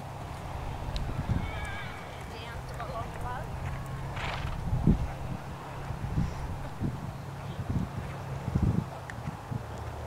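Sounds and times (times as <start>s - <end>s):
distant voices: 0.0s - 10.0s
horse hooves trotting on grass: 0.0s - 10.0s.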